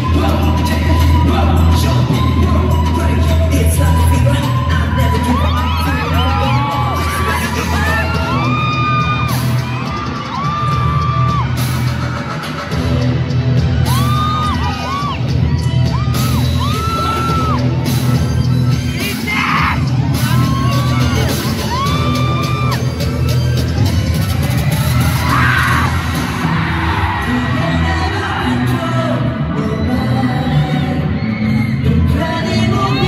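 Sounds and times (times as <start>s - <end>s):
audience screaming whoops: 0.0s - 12.8s, 13.5s - 32.7s
pop dance music over sound system: 0.0s - 33.0s.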